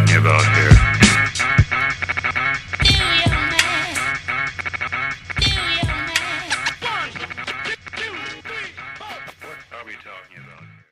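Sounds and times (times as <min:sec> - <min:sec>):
turntable scratching: 0:00.0 - 0:10.4
hip hop beat: 0:00.0 - 0:10.8.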